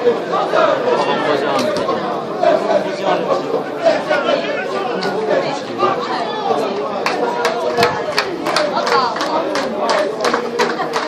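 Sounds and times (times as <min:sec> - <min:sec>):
overlapping voices chattering: 0:00.0 - 0:11.0.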